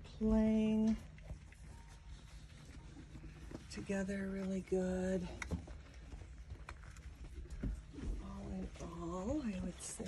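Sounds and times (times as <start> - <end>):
low steady rumble: 0.0 - 10.0
puppies scuffling on blanket: 0.2 - 10.0.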